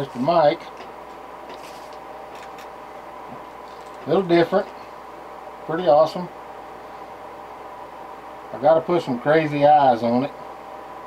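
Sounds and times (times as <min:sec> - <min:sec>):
low room hum with tones: 0:00.0 - 0:11.0.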